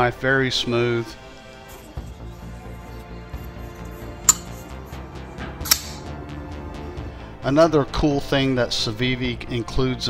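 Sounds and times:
background music: 0.0s - 10.0s
folding knife clicking: 4.3s - 4.6s, 5.7s - 6.1s.

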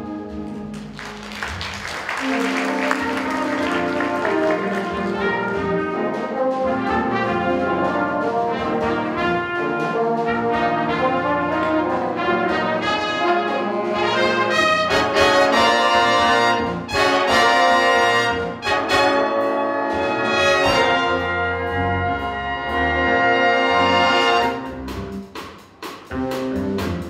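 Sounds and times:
jazz big band playing: 0.0s - 27.0s.

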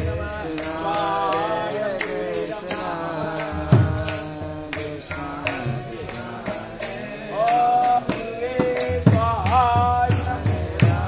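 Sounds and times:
hand cymbals: 0.0s - 11.0s
voices singing chanted melody: 0.0s - 11.0s.

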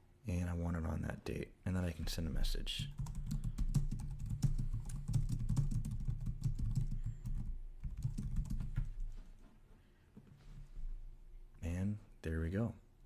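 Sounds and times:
typing on computer keyboard: 2.8s - 9.0s.

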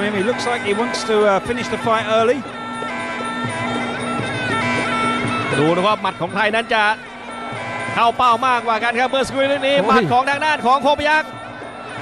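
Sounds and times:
wailing oboe melody: 0.0s - 12.0s.

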